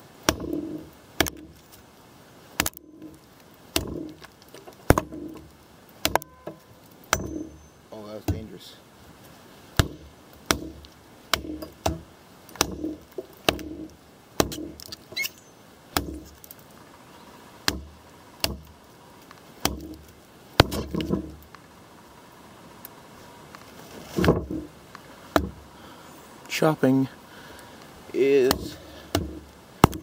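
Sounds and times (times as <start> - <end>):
knife chopping into log: 0.3 - 1.5, 9.8 - 13.8, 16.0 - 16.4, 19.6 - 20.0, 20.6 - 21.3.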